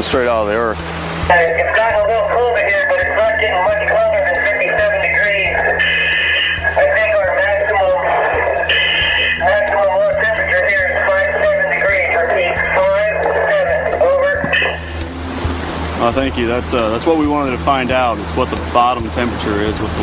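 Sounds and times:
steady low drone: 0.0s - 20.0s
sustained wavering tones: 1.1s - 19.2s.

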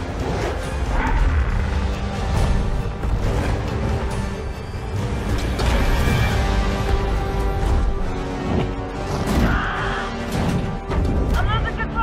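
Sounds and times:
tense orchestral score: 0.0s - 12.0s.

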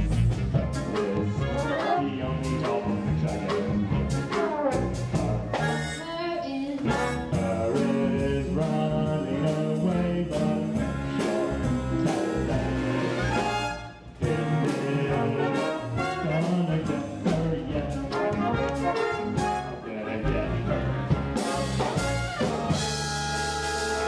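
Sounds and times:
big band jazz music with brass: 0.0s - 6.1s, 6.8s - 24.0s.

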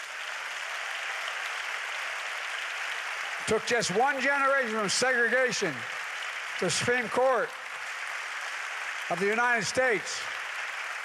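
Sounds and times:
congregation applauding: 0.0s - 11.0s.

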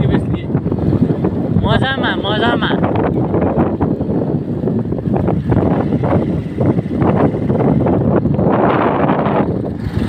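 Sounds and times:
motorcycle engine rumble: 0.0s - 10.0s
road noise: 0.0s - 10.0s
wind buffeting microphone: 0.0s - 10.0s.

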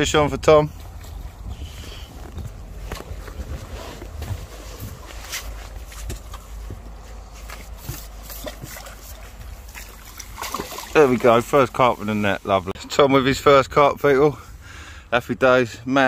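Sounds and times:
wind rumbling on microphone: 0.0s - 8.0s
water sloshing: 2.5s - 12.5s.

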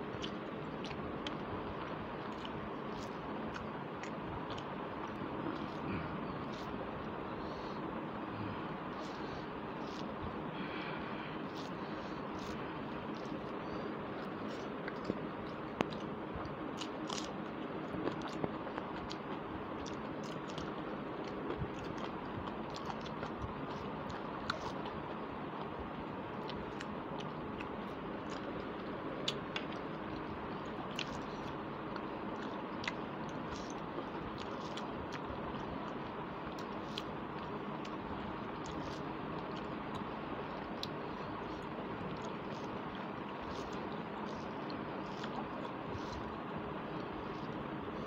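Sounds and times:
person chewing food: 0.0s - 48.0s
steady background hiss: 0.0s - 48.0s
small clicks and mouth sounds: 0.1s - 7.7s, 11.5s - 25.8s, 26.4s - 48.0s.

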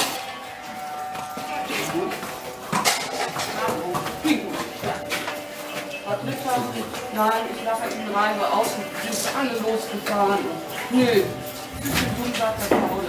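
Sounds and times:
indistinct voices talking: 0.0s - 13.0s.

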